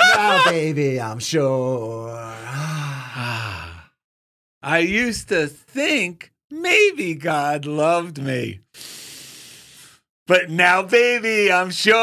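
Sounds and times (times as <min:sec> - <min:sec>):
man sighing: 0:02.2 - 0:03.9.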